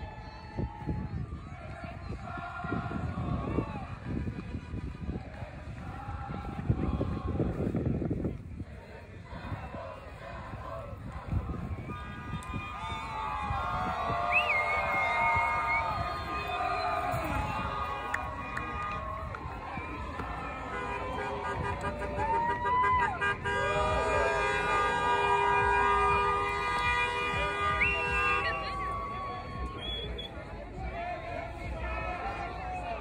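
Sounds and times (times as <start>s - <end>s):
crowd shouting and cheering: 0.0s - 33.0s
car horns blasting: 20.6s - 28.7s.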